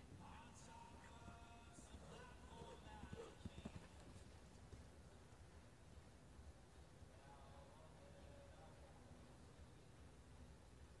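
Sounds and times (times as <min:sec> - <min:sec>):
horse hoofbeats on dirt: 0:00.2 - 0:05.4.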